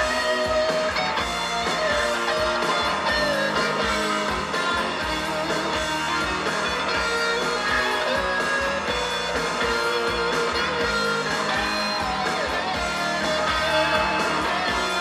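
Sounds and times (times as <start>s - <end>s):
guitar song on car radio: 0.0s - 15.0s.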